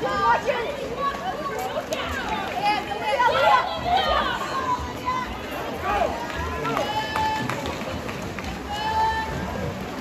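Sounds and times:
crowd noise: 0.0s - 10.0s
people shouting across a pool: 0.0s - 10.0s.

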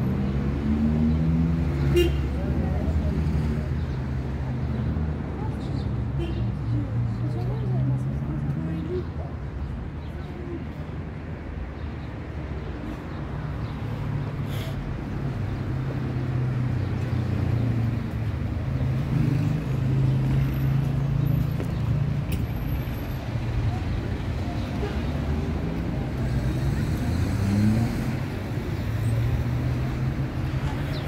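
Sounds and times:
voices of passers-by: 0.0s - 31.0s.

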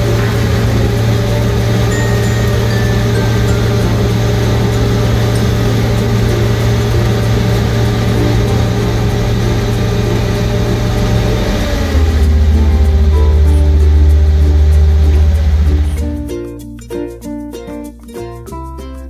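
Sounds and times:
bale spreader shredding: 0.0s - 16.1s
tractor engine hum: 0.0s - 16.5s.

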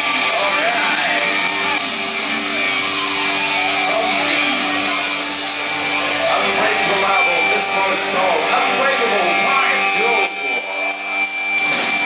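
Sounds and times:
distorted guitars: 0.0s - 12.0s
heavy metal band playing live: 0.0s - 12.0s.

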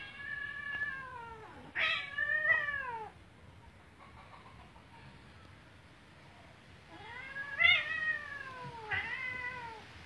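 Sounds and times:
cat meowing: 0.0s - 3.2s, 6.9s - 9.9s.

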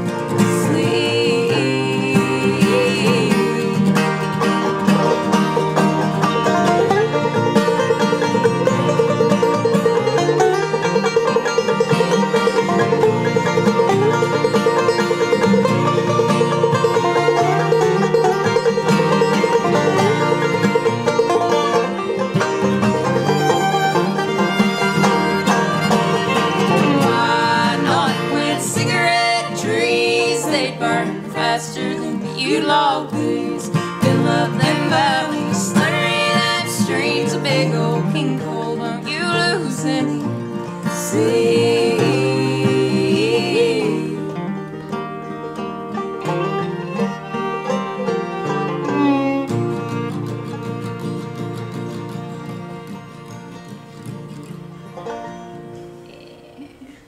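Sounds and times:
acoustic guitar: 0.0s - 57.0s
banjo: 0.0s - 57.0s
fiddle: 0.0s - 57.0s.

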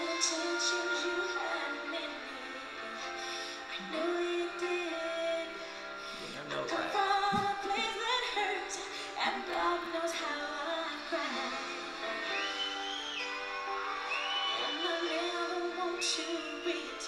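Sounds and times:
woman singing a slow ballad: 0.0s - 13.3s, 14.1s - 17.0s.

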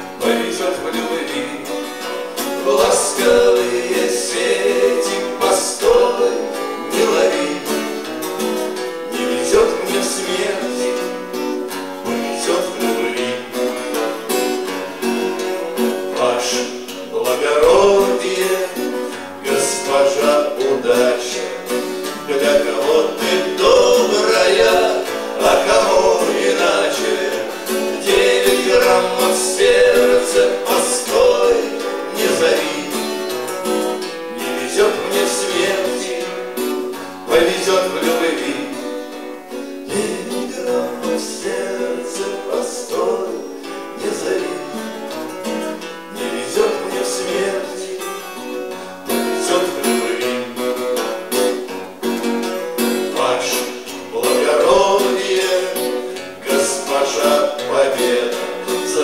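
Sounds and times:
man singing: 0.0s - 14.2s, 16.0s - 33.6s, 34.4s - 44.9s, 46.1s - 50.9s, 53.1s - 59.0s
acoustic guitars strummed and picked: 0.0s - 59.0s.

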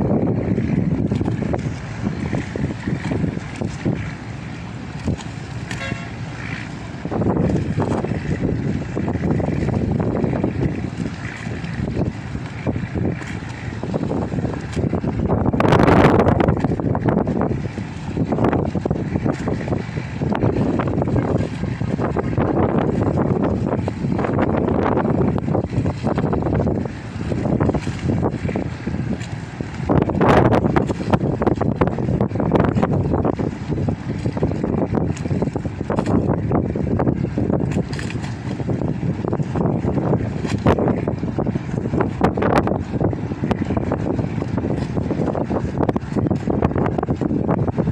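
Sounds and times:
steady low rumble: 0.0s - 47.9s
wind buffeting microphone: 0.0s - 47.9s.

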